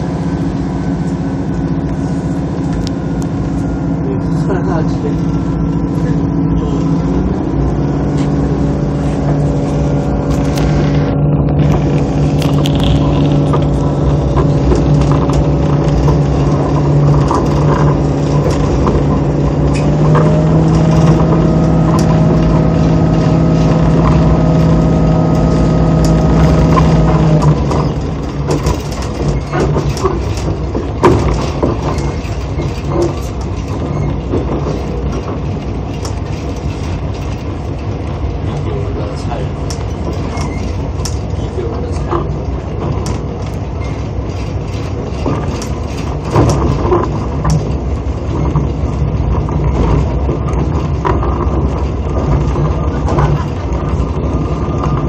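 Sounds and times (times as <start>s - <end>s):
diesel engine running: 0.0s - 55.0s
wheels rumbling on rail: 0.0s - 55.0s
clicks and knocks: 11.4s - 38.2s, 39.6s - 55.0s.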